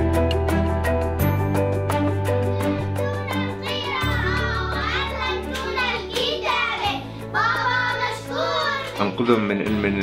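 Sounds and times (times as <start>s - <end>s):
background music with low sustained notes: 0.0s - 10.0s
children singing: 2.5s - 9.6s.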